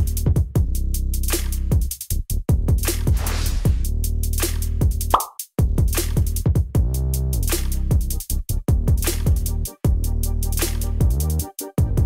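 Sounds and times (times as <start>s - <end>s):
short rising whoosh: 3.1s - 3.9s
electronic music with drum-machine beat: 4.9s - 12.0s.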